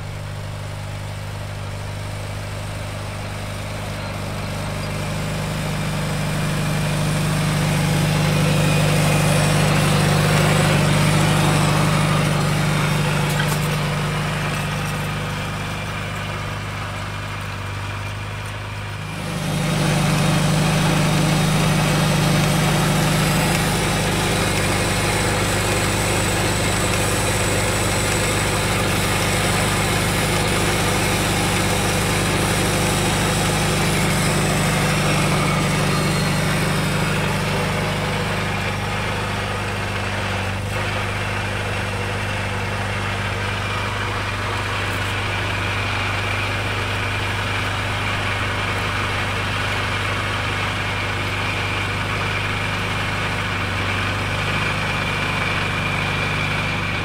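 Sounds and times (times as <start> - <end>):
tractor engine droning: 0.0 - 57.0.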